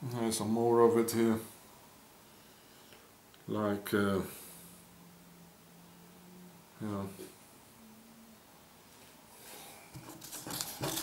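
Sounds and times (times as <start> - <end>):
newspaper pages rustling: 10.0 - 11.0.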